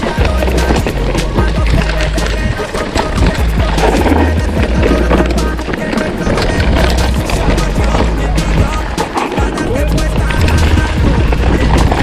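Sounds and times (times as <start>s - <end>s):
background music: 0.0s - 12.0s
bike rattling over bumps: 0.0s - 12.0s
tyres crunching over stones: 0.0s - 12.0s.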